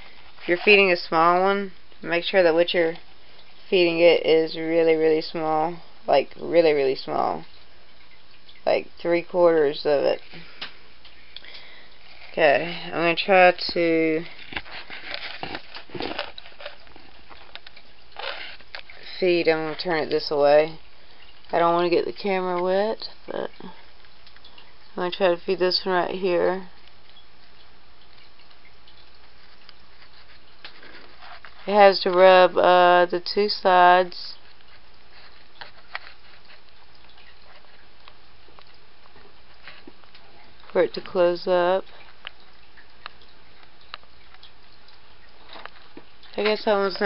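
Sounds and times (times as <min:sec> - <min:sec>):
camera handling clicks and rustles: 0:14.4 - 0:18.9.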